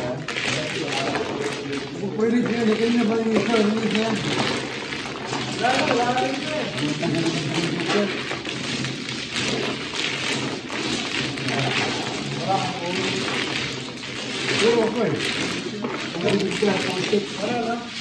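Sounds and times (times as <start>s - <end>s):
mahjong tiles clattering: 0.0s - 18.0s.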